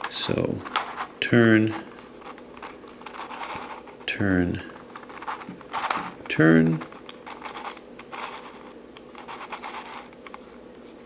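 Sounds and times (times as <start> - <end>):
plastic puzzle scraping and clicking: 0.0 - 4.1, 4.7 - 10.5.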